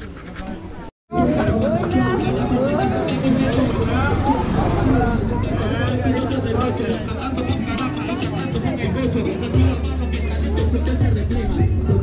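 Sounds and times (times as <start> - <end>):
people talking at once: 0.0 - 12.0
motorcycle engine passing: 2.5 - 5.9.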